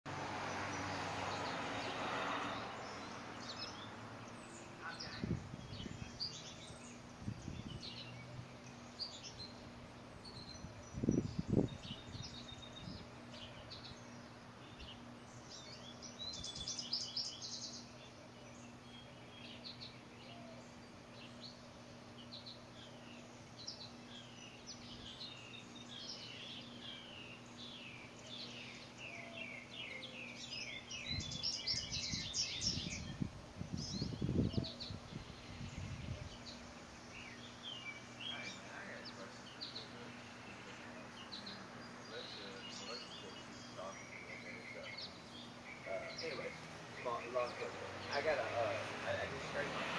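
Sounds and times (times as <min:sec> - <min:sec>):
songbirds chirping and singing: 0:00.1 - 0:49.9
faint steady hum: 0:03.9 - 0:47.0.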